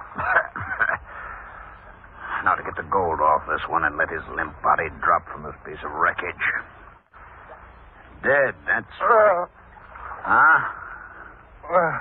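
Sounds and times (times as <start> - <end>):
radio drama voices: 2.0 - 7.4, 8.0 - 10.8.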